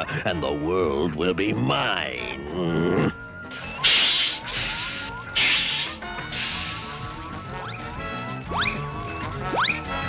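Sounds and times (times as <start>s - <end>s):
sharp hissing bursts: 3.8s - 7.1s.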